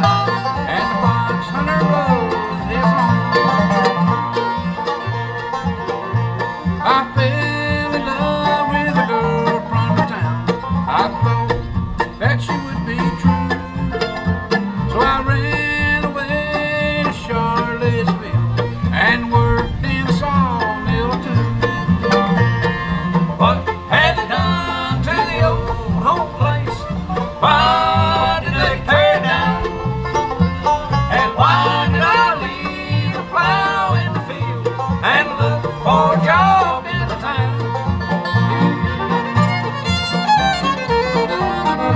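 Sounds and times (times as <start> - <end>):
acoustic guitar: 0.0 - 41.9
banjo: 0.0 - 41.9
dobro: 0.0 - 41.9
fiddle: 0.0 - 41.9
mandolin: 0.0 - 41.9
upright bass: 0.0 - 41.9.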